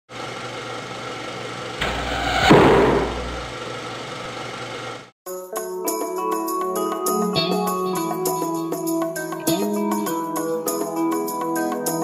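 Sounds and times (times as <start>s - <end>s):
steady hum: 1.8s - 3.6s
swell into low boom hit: 1.8s - 3.6s.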